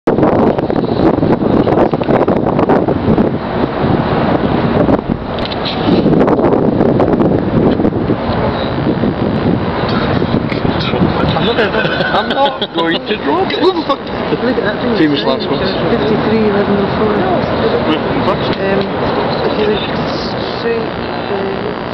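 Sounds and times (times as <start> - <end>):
wind buffeting microphone: 0.1 - 21.9.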